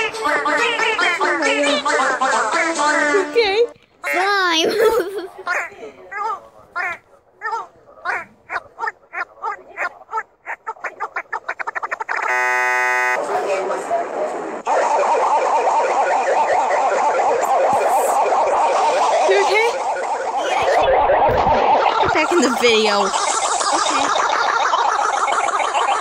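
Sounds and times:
garbled jumble of layered sound: 7.4s - 26.0s
steady buzzing tone: 11.6s - 13.3s
squeaky meep call: 12.1s - 13.2s.

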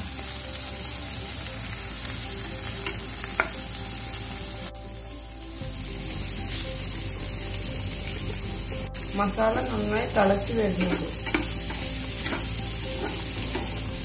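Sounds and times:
cheese sizzling in hot oil: 0.0s - 14.0s.

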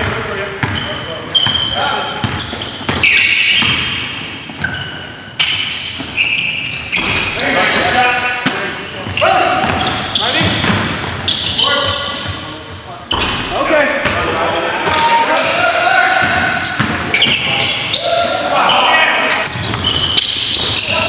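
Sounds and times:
basketball bouncing: 0.0s - 1.6s, 2.2s - 4.8s, 8.4s - 11.4s, 16.2s - 17.5s
players calling out: 0.0s - 21.0s
sneakers squeaking: 0.0s - 21.0s.

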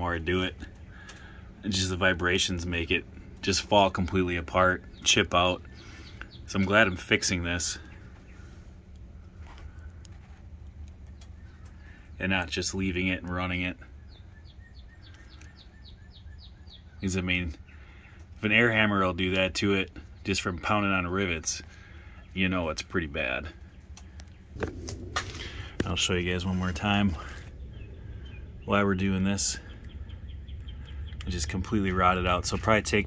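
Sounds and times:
low steady rumble: 0.0s - 33.0s
faint bird chirps: 4.6s - 10.4s, 11.0s - 18.4s, 21.3s - 32.8s.

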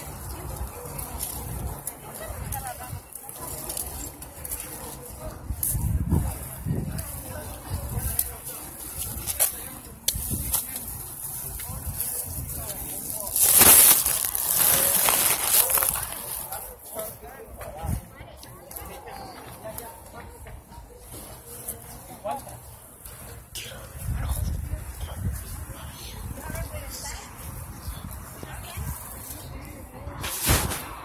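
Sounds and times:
people chattering: 0.0s - 31.0s.

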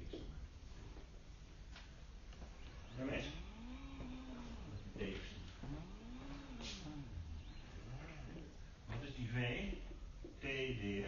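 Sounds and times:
person vocalizing drawn-out vowel: 5.6s - 8.5s.

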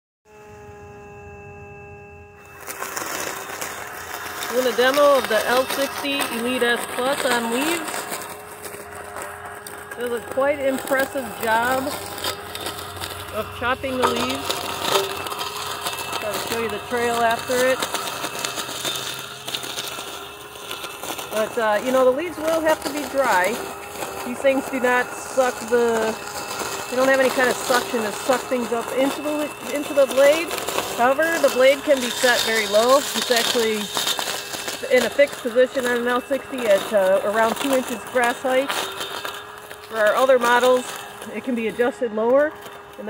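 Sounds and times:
electric motor humming: 0.3s - 43.0s
mower chopping dry leaves: 0.3s - 43.0s.

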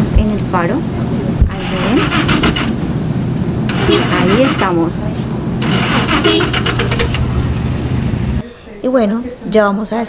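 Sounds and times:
engine humming: 0.0s - 8.4s.

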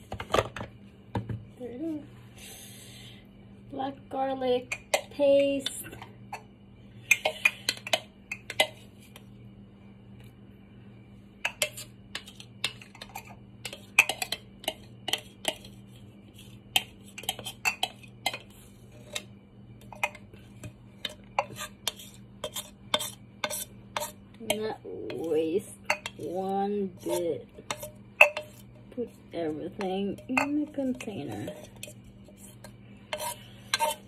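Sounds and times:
knife scraping inside chopper bowl: 21.4s - 26.2s, 26.8s - 29.1s, 29.7s - 34.0s.

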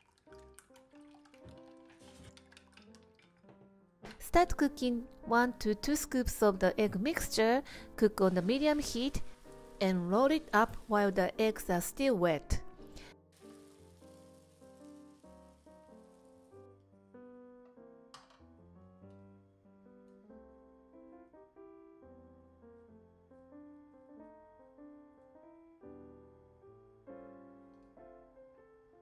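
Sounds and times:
gentle piano music: 0.0s - 29.0s
faint hiss: 12.8s - 16.8s.

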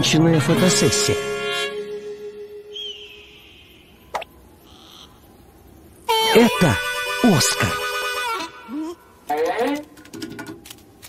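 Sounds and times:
high whistling call: 1.9s - 4.4s, 6.1s - 8.8s.

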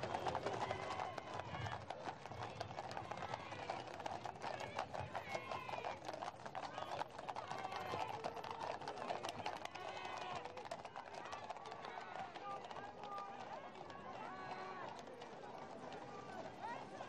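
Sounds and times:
crowd chatter: 0.0s - 17.0s
hooves clip-clopping on pavement: 0.0s - 17.0s.

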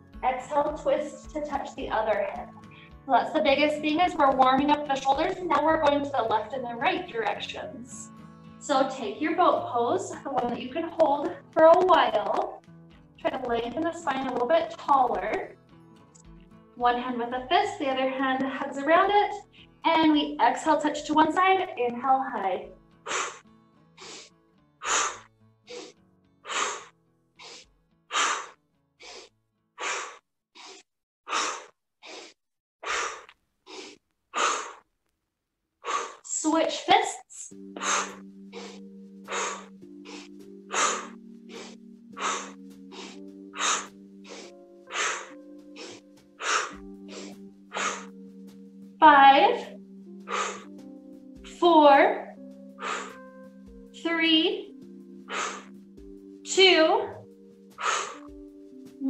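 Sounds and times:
soft background music: 0.0s - 28.4s, 36.3s - 59.0s
woman breathing: 2.6s - 3.0s, 23.0s - 23.4s, 24.0s - 34.8s, 35.8s - 36.3s, 37.6s - 48.3s, 50.2s - 50.8s, 52.6s - 53.4s, 55.2s - 55.8s, 57.2s - 58.4s
voiced exhale: 24.0s - 34.8s, 35.8s - 36.2s, 52.8s - 53.2s, 55.3s - 55.7s
short sharp breath: 35.8s - 36.2s.

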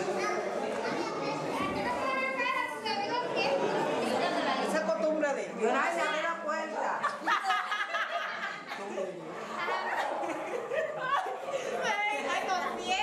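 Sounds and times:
women and children chattering: 0.0s - 13.0s.

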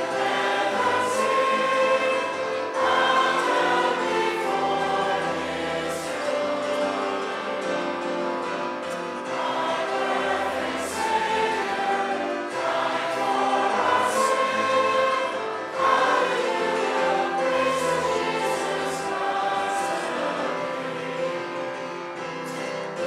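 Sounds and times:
congregation singing: 0.0s - 23.0s.

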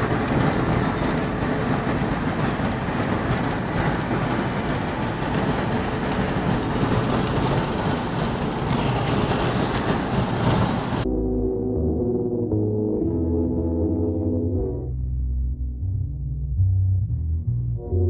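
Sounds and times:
road and engine noise in van: 0.0s - 11.1s.

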